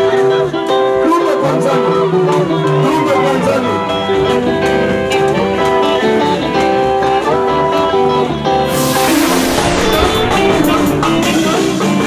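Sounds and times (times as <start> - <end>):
live band with drums: 8.7 - 12.0.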